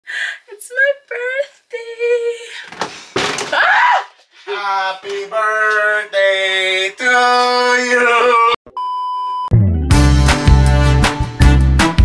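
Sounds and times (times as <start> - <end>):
woman screaming: 3.5 - 4.2
woman squealing and laughing: 3.5 - 4.2.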